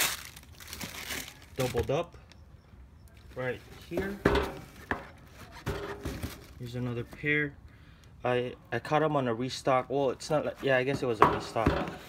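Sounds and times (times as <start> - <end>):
cardboard boxes knocking and scraping: 3.8 - 6.6, 10.6 - 12.0.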